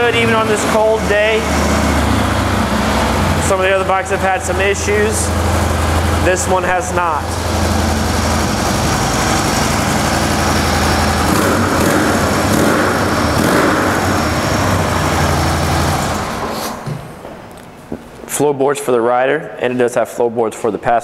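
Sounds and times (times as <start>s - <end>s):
motorcycle engine running: 0.0s - 17.3s.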